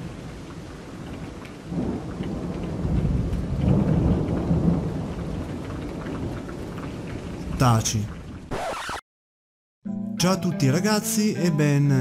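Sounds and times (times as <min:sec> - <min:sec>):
low rumble of thunder: 0:00.0 - 0:08.5
steady rain falling: 0:00.0 - 0:08.8.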